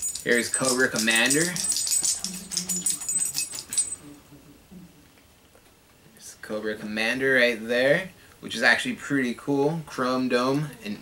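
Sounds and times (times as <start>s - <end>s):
plastic parts clicking and rattling: 0.0s - 4.0s
faint low hum: 0.0s - 11.0s.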